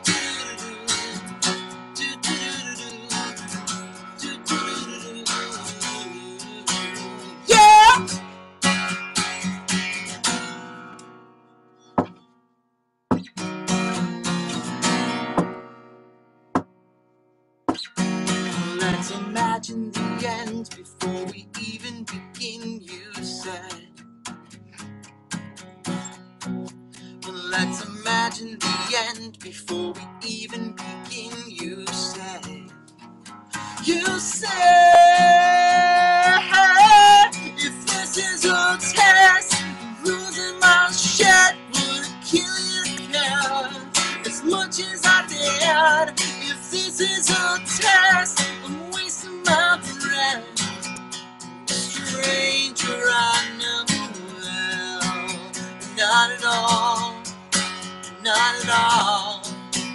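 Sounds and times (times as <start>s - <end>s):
man singing: 0.0s - 8.2s, 18.3s - 23.9s, 27.2s - 32.7s, 33.5s - 50.7s, 51.7s - 57.4s, 58.0s - 59.9s
strummed acoustic guitar: 0.0s - 12.4s, 13.1s - 17.0s, 17.7s - 59.9s.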